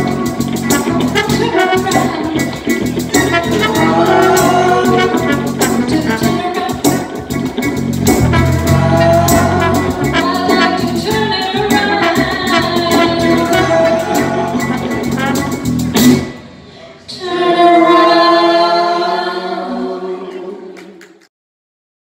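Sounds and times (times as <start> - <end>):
live band playing: 0.0 - 16.7
long held closing note: 8.2 - 10.9.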